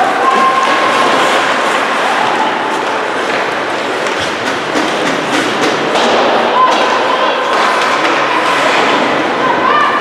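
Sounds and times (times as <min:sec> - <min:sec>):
skates scraping ice: 0:00.0 - 0:09.8
indistinct voices: 0:00.0 - 0:10.0
hockey stick clacks: 0:00.1 - 0:09.1.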